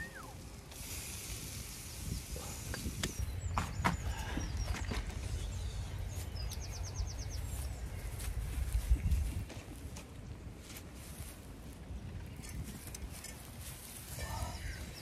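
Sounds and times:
dry straw crackling underfoot: 0.0 - 3.4, 4.2 - 15.0
bird chirps: 3.0 - 8.4.

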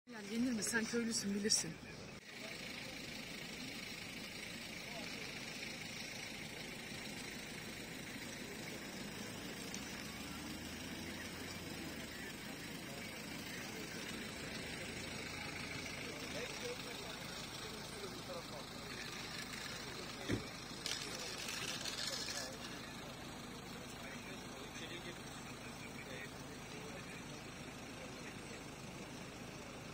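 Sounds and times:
faint indistinct voices: 0.1 - 29.9
vehicle engine running: 0.1 - 29.9.

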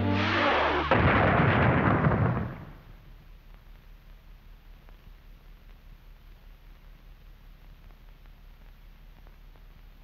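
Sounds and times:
cartoon blast sound effect: 0.0 - 2.4.

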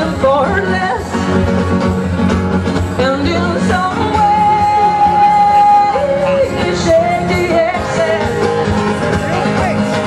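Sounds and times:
woman singing: 0.0 - 1.2, 3.0 - 8.6
strummed acoustic guitar: 0.0 - 10.0.

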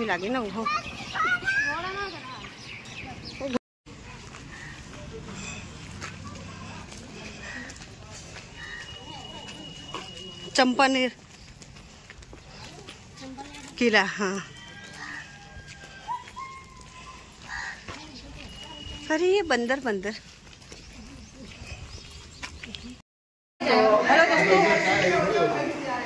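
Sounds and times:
distant voices: 0.0 - 13.6.

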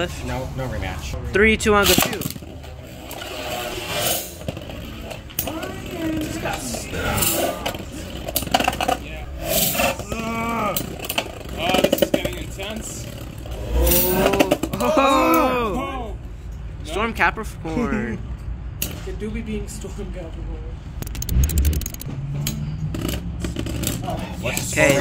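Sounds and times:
sharp metal clicks: 21.0 - 22.6.

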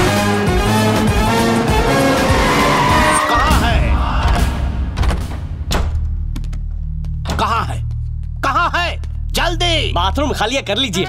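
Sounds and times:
background music: 0.0 - 11.0
car tyres squealing: 1.6 - 3.6.

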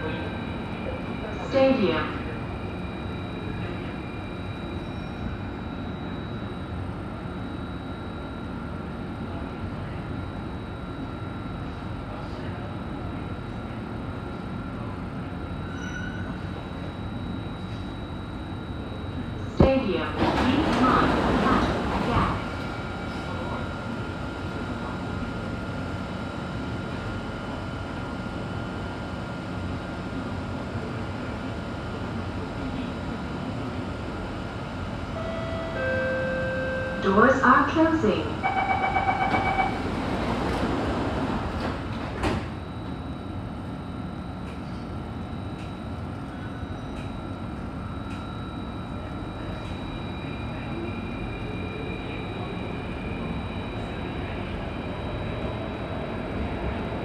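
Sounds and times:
train rumble and hum: 0.0 - 57.0
train doors clunk: 19.6 - 22.7, 38.7 - 42.6.

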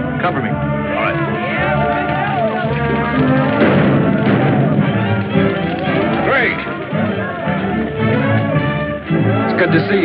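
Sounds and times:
film score music: 0.0 - 10.0
voices shouting: 0.7 - 9.7.

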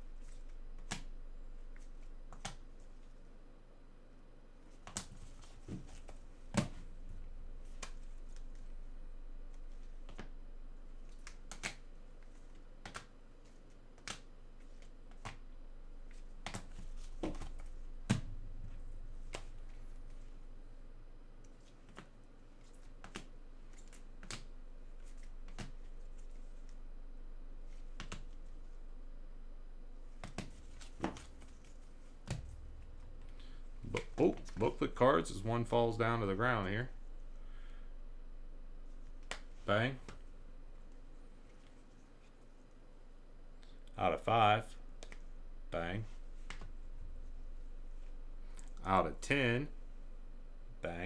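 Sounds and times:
trading cards clicking and tapping: 2.3 - 2.6, 11.1 - 11.9, 12.5 - 13.1, 16.1 - 18.3, 22.8 - 24.5, 27.9 - 28.4, 30.2 - 32.6, 33.2 - 34.7.

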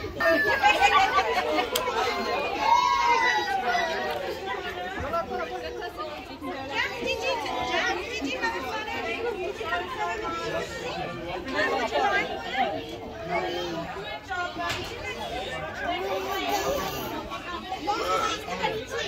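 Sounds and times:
children and adults chattering: 0.0 - 19.0.

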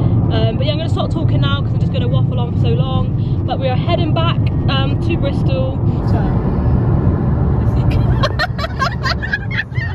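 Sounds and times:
car road and engine rumble: 0.0 - 9.9.

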